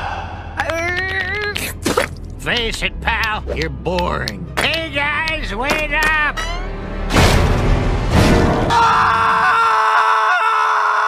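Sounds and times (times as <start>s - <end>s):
long loud scream: 8.7s - 11.0s.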